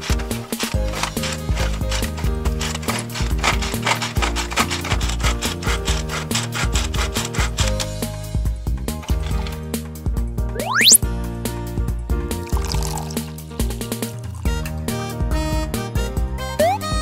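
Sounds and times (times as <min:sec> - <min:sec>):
toy blender cord rattle: 0:00.0 - 0:08.0, 0:09.0 - 0:09.6
cheerful background music: 0:00.0 - 0:11.0, 0:11.6 - 0:17.0.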